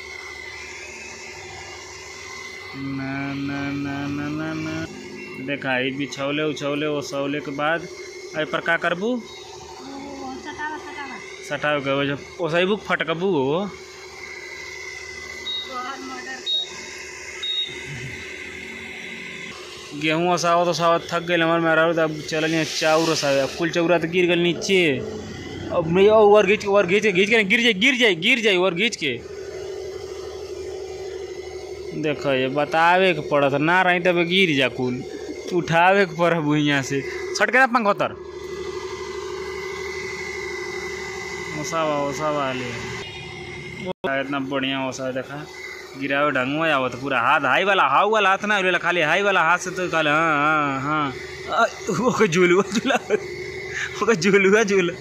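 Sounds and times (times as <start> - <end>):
steady engine drone: 0.0 - 55.0
short high beeps: 4.6 - 6.0, 15.5 - 16.8, 17.4 - 18.0
person speaking: 19.9 - 29.2.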